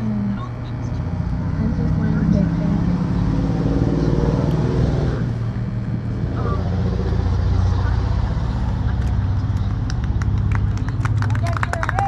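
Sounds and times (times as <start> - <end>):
voices: 0.0 - 12.0
sharp claps: 9.5 - 12.0.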